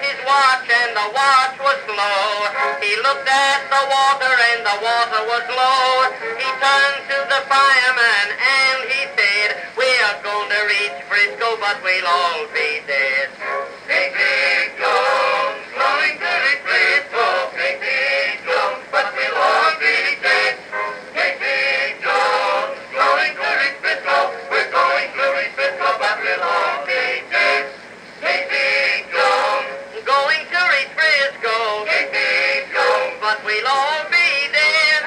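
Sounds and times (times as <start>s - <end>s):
male voices singing on old recording: 0.0s - 35.0s.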